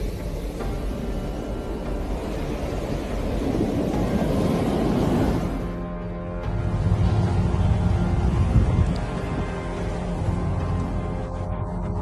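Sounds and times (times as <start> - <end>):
stormy surf and wind roar: 0.0 - 11.4.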